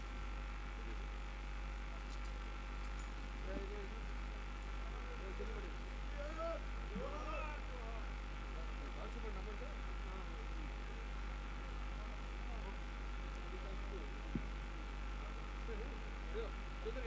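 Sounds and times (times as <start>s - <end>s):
electrical hum: 0.0s - 17.0s
indistinct background talk: 0.7s - 17.0s.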